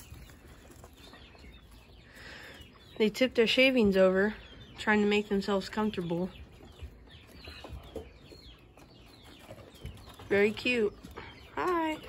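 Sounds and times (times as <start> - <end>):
rustling of wood shavings: 0.0 - 4.4.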